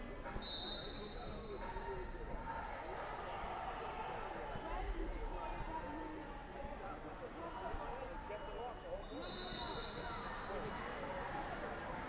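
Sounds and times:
chatter of many voices echoing: 0.0 - 12.0.

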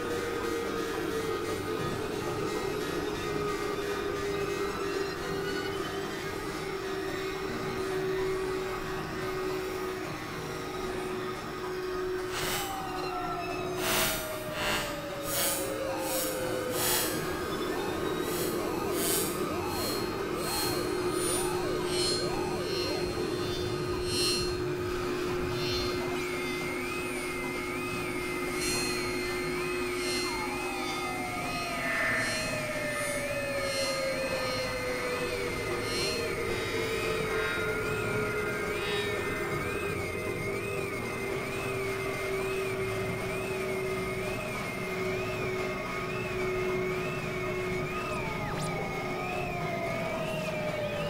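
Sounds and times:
noisy bed: 0.0 - 51.0
slowly falling tone: 0.0 - 51.0
synthesizer drones: 0.0 - 51.0
high warbling tone: 12.0 - 39.6.

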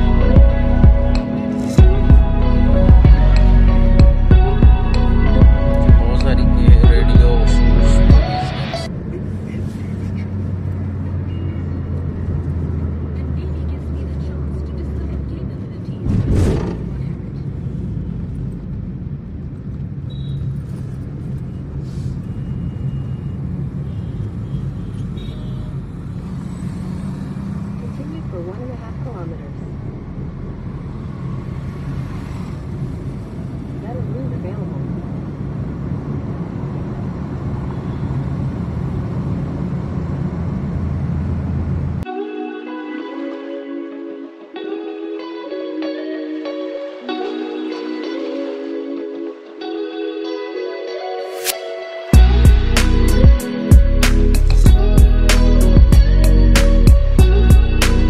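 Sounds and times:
road and engine rumble in car: 1.8 - 42.1.

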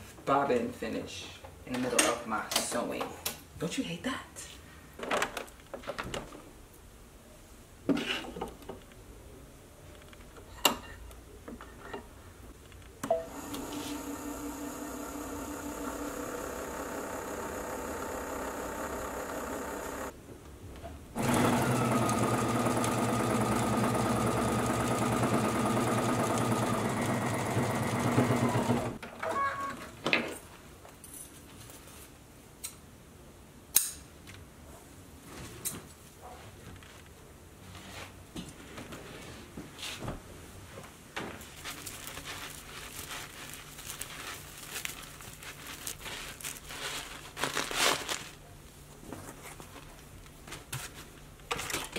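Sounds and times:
sewing machine stitching: 13.3 - 20.1, 21.2 - 29.0
sewing machine winding bobbin: 13.3 - 20.1, 21.2 - 29.0.

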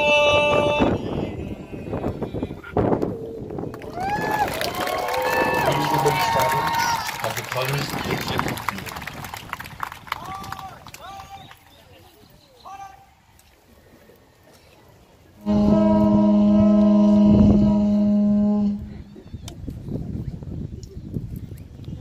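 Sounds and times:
conch shell blown: 15.4 - 19.1.

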